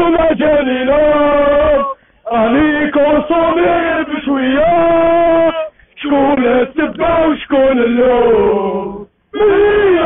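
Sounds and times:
man singing long notes: 0.0 - 10.0.

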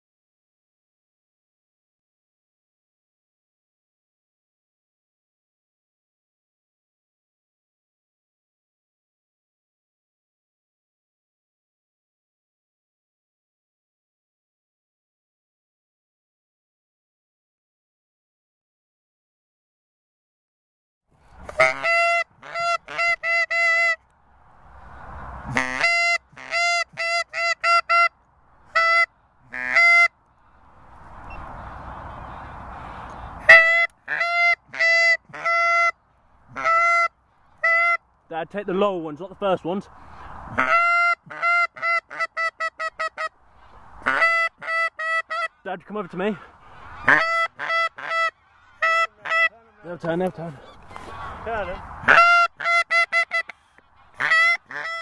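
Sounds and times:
geese honking: 21.4 - 24.0, 24.8 - 38.0, 40.0 - 55.0.

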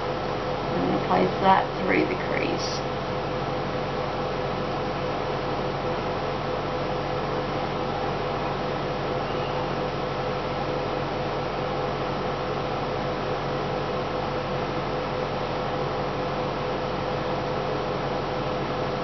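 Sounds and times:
faint constant tone: 0.0 - 19.0.

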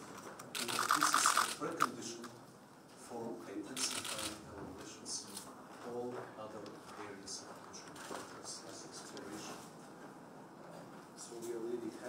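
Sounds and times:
camera shutter clicks: 3.8 - 4.4.

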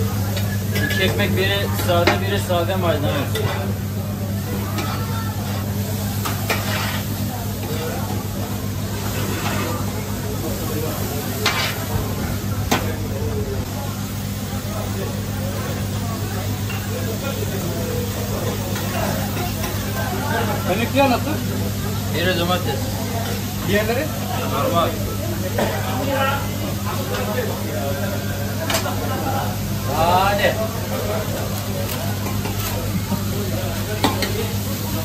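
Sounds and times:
meat sizzling on a griddle: 4.4 - 12.8, 14.1 - 35.0.

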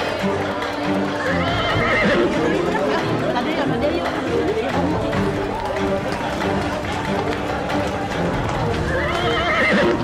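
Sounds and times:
background music: 0.0 - 10.0
crowd chatter: 0.0 - 10.0
horse whinnying: 1.2 - 2.4, 8.8 - 10.0.

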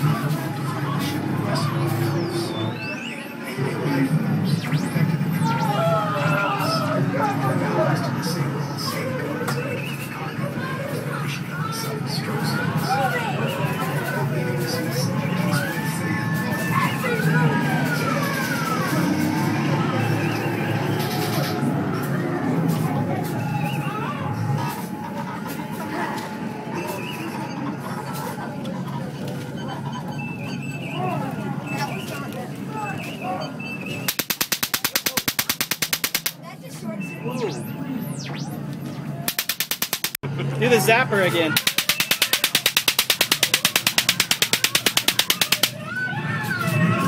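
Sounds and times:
electronic music: 34.1 - 36.4, 39.3 - 40.2, 41.6 - 45.8
zapper buzzing pulses: 34.1 - 36.4, 39.3 - 40.2, 41.6 - 45.8.

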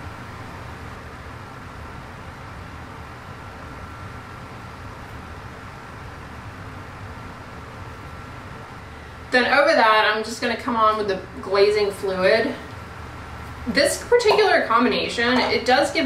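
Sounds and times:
faint high whine: 0.0 - 16.0.

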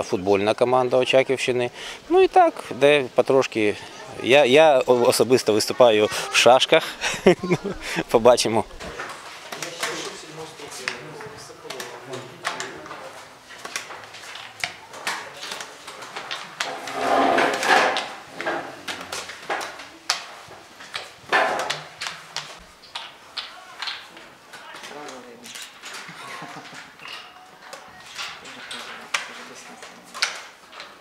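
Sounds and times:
background voices in a hall: 3.6 - 31.0
draughts pieces clicking on boards: 11.7 - 16.7, 18.8 - 31.0.

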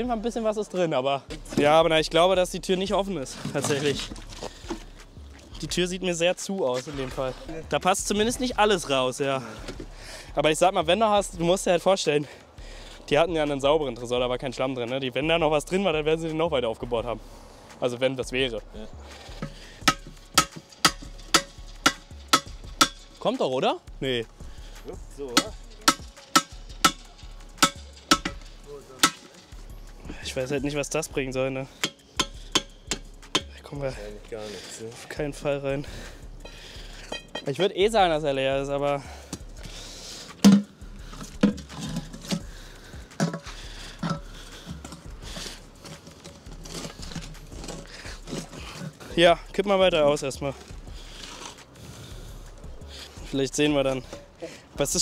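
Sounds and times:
sharp ringing knocks: 19.4 - 23.2, 25.4 - 29.4, 31.8 - 33.6.

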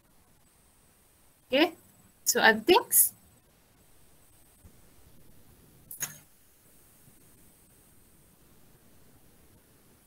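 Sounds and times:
faint steady hiss: 0.0 - 10.0
sharp click: 5.9 - 6.2.

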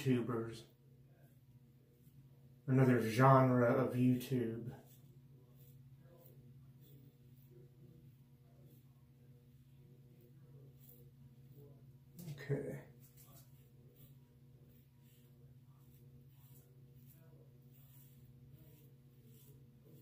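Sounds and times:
razor scraping stubble: 1.2 - 20.0.

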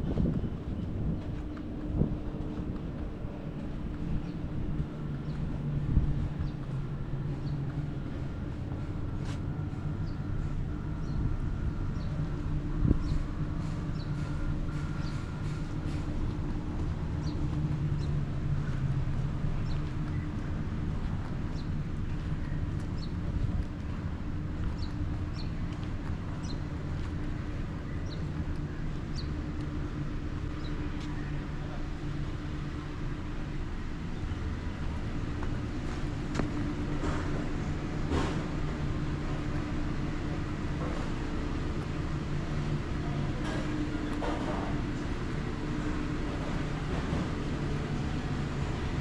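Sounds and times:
low mechanical hum: 0.0 - 49.0.

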